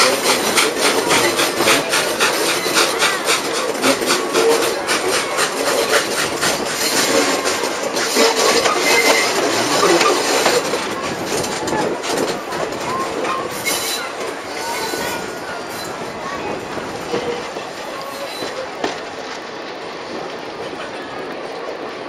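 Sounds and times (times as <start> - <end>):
train wheels rumbling on rails: 0.0 - 22.0.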